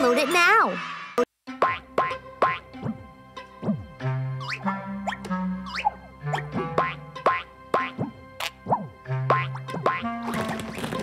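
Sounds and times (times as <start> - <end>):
bouncy children's music: 1.5 - 11.0
cartoon boing sound effects: 1.6 - 2.9.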